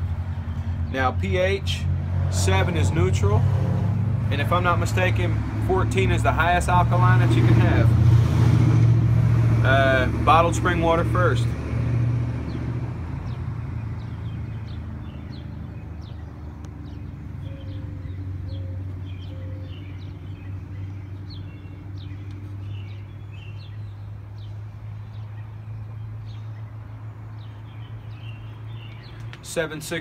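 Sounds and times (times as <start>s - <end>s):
small birds chirping: 12.4s - 30.0s.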